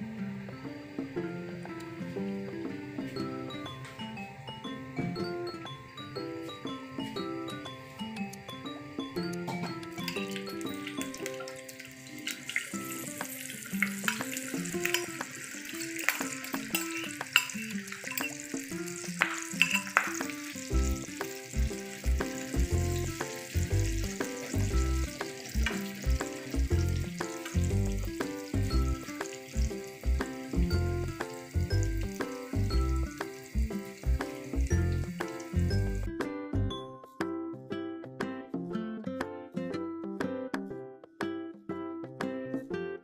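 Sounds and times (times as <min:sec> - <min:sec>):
background music: 0:00.0 - 0:43.0
batter sizzling in hot oil: 0:09.9 - 0:36.1.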